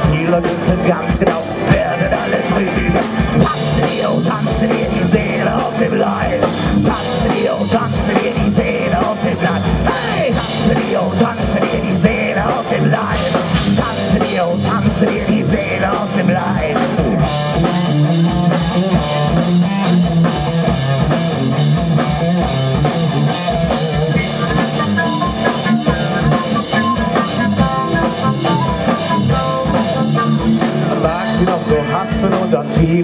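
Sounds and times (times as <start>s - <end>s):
drum kit: 0.0s - 33.0s
electric guitar: 0.0s - 33.0s
higher melodic line: 0.0s - 33.0s.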